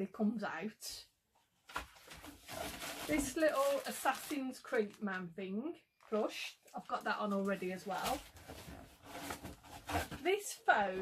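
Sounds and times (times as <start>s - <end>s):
plastic packaging crinkling: 2.0s - 5.2s.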